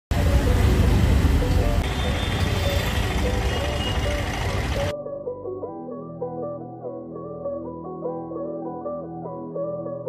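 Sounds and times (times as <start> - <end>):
road noise rumble: 0.1 - 4.9
background music: 0.1 - 10.0.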